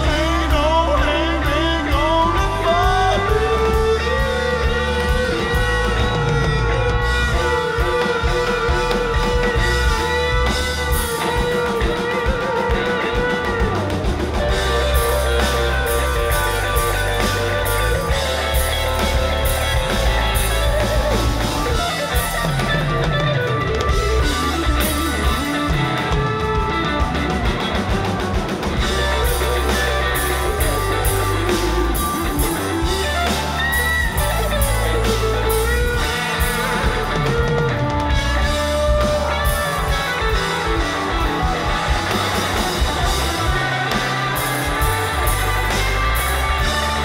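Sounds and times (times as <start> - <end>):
drum kit: 0.0 - 47.0
electric guitar lead bending notes: 0.0 - 47.0.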